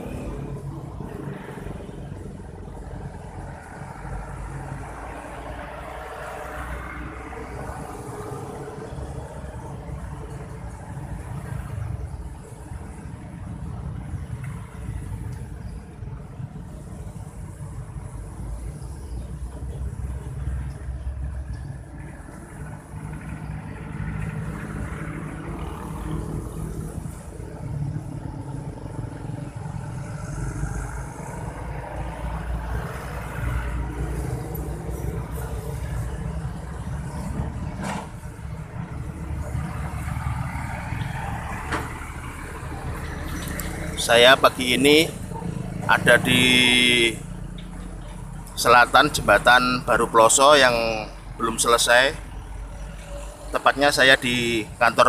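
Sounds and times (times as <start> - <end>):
cars passing: 0.0 - 55.0
engine and tyre rumble: 0.0 - 55.0
motorcycles passing: 0.0 - 55.0
trucks passing: 0.0 - 55.0.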